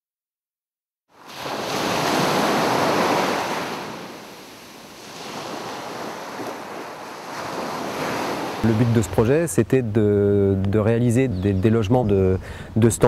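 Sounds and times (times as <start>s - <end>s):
sea waves washing in: 1.1s - 9.4s.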